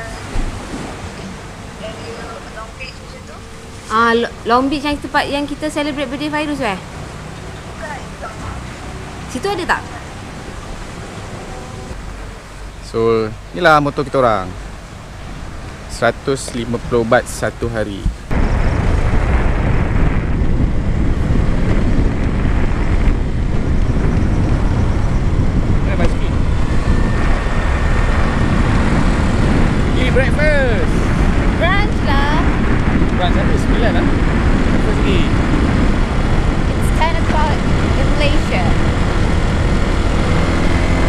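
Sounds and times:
wind rushing over microphone: 0:00.0 - 0:41.0
motorbike engine: 0:18.9 - 0:41.0.

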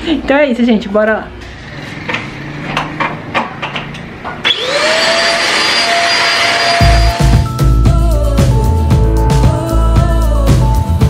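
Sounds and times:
handheld vacuum cleaner whining: 0:04.3 - 0:07.4.

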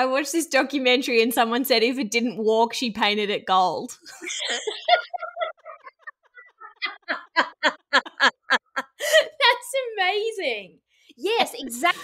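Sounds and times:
woman laughing hard: 0:04.1 - 0:09.4.

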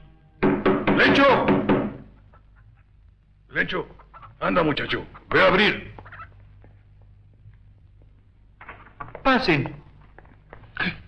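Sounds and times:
steady low hum: 0:02.0 - 0:11.0.

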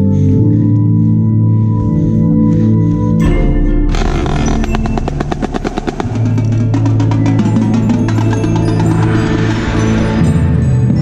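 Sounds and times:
snare drum roll: 0:04.0 - 0:07.4.

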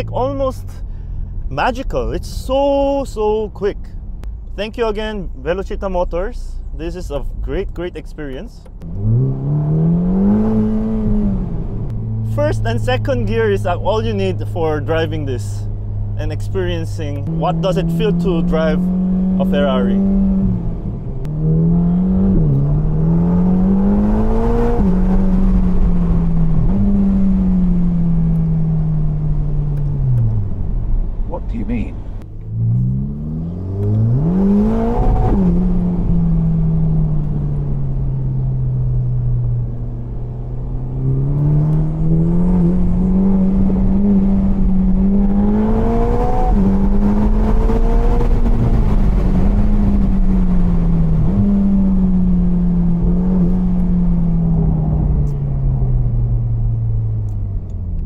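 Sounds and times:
road and wind rumble: 0:00.0 - 0:58.0
car engine revving: 0:08.6 - 0:58.0.

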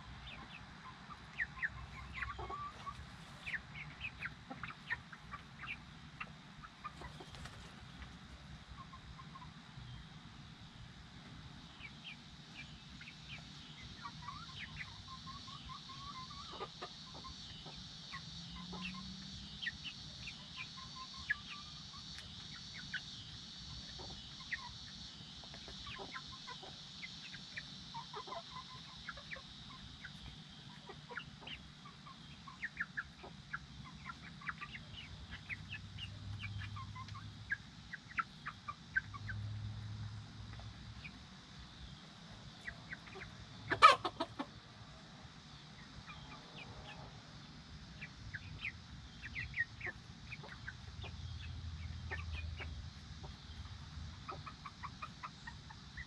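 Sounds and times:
chicks chirping and clucking: 0:00.0 - 0:56.0.

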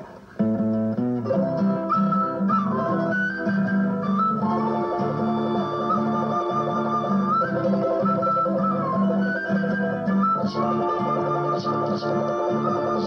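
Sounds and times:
acoustic guitar strumming chords: 0:00.0 - 0:13.0
wooden flute melody: 0:01.2 - 0:13.0.

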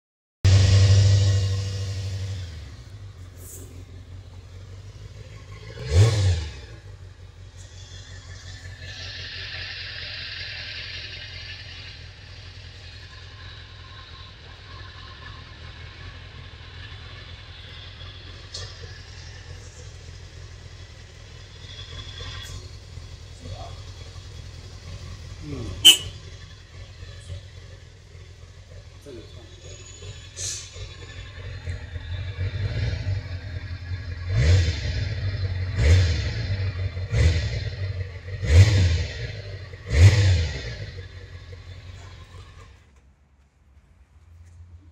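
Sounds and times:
motorcycle engine idling and revving: 0:00.4 - 0:44.9.

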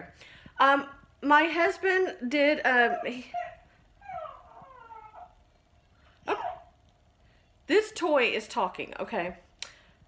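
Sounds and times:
faint whining animal cries: 0:02.7 - 0:06.7.

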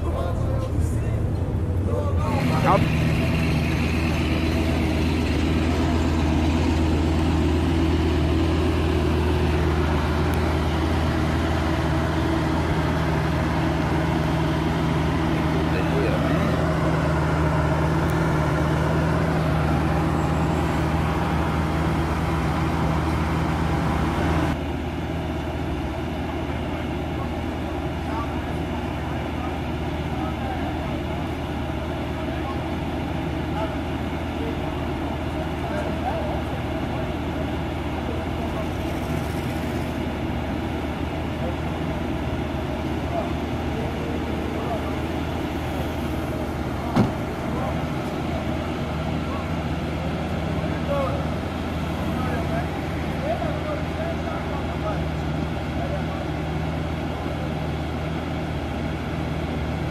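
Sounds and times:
car engines idling: 0:00.0 - 0:59.9.

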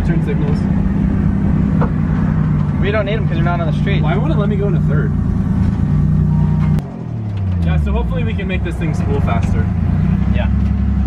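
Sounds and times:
car engine running: 0:00.0 - 0:11.0.

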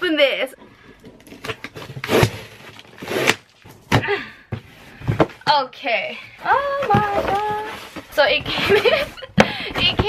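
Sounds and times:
cardboard box ripping: 0:01.4 - 0:03.6.

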